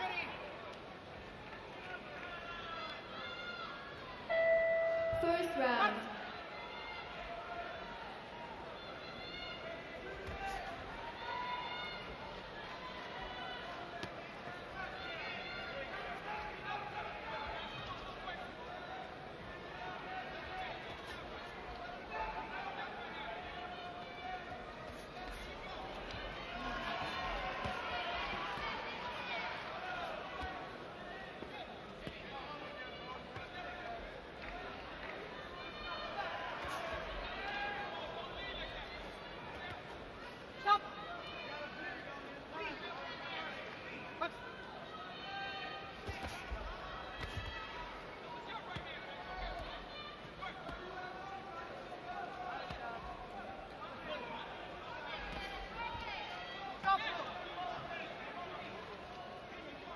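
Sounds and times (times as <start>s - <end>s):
crowd talking and calling out: 0.0s - 59.9s.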